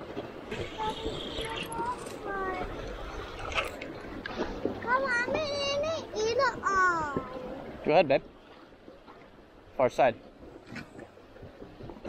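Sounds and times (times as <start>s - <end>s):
river current: 0.0s - 12.0s.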